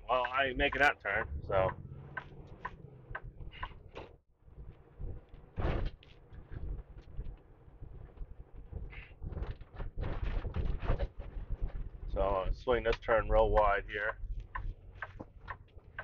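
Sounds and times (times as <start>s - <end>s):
truck engine and road rumble: 0.0s - 16.0s
cab knocks and rattles: 1.3s - 16.0s.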